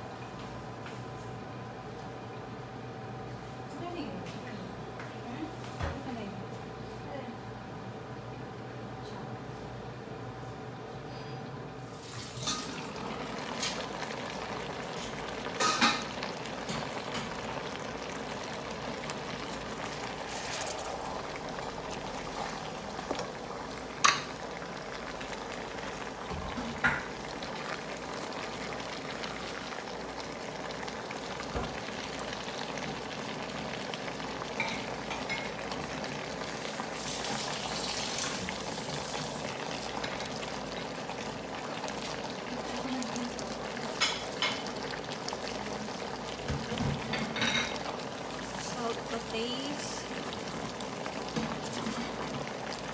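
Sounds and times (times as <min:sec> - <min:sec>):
stew bubbling and sizzling: 0:11.8 - 0:52.9.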